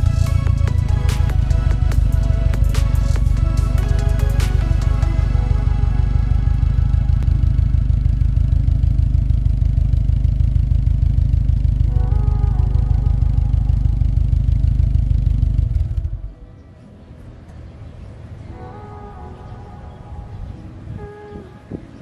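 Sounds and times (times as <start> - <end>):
background music: 0.0 - 7.3
car engine idling: 0.0 - 16.6.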